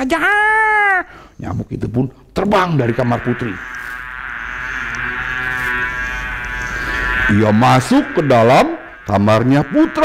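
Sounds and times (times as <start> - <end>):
mosquito buzzing: 2.5 - 10.0.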